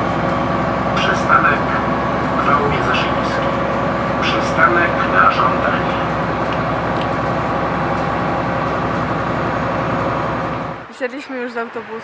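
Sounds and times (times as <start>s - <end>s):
bus engine hum: 0.0s - 12.0s
road noise: 0.0s - 12.0s.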